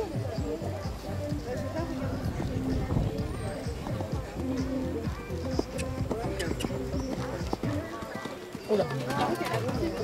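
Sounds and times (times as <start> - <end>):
people talking: 0.0 - 10.0
pony hoofbeats on sand: 0.0 - 10.0.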